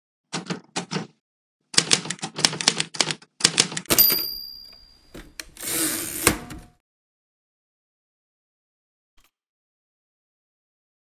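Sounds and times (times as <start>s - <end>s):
typewriter keystrokes clacking: 1.8s - 4.3s
typewriter carriage return: 1.8s - 6.8s
typewriter bell ding: 3.9s - 5.3s.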